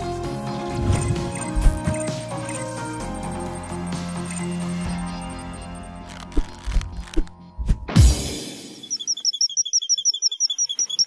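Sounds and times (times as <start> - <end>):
rapid high chirps: 0.9 - 6.0, 8.6 - 11.0.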